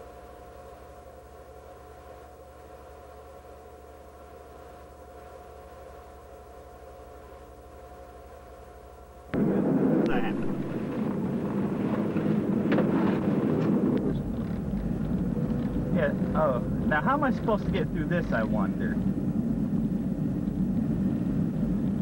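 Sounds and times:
faint steady hum: 0.0s - 22.0s
car engine and road noise: 9.3s - 22.0s.

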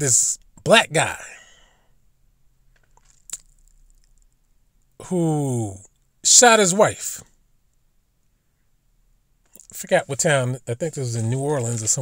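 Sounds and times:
faint small noises: 0.0s - 12.0s
low steady hum: 0.0s - 12.0s.

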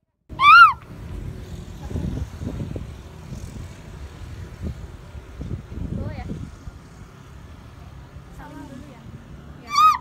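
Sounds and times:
wind rumble on microphone: 0.3s - 9.3s.

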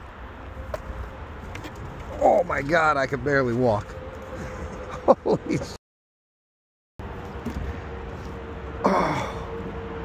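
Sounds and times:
low outdoor background rumble: 7.0s - 10.0s.

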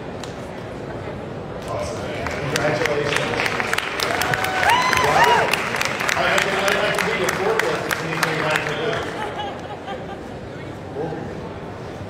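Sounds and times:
crowd chatter: 0.0s - 12.0s
audience applause: 1.8s - 9.6s.

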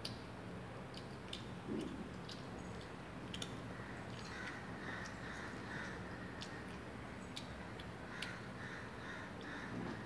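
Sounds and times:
faint bird calls: 3.7s - 10.0s.

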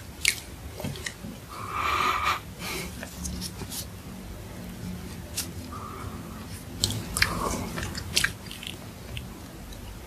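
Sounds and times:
mouth chewing soft bread: 6.5s - 10.0s.

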